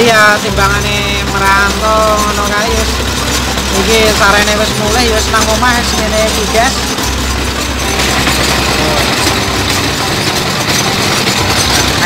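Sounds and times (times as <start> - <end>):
drilling rig engine chugging: 0.0 - 12.0.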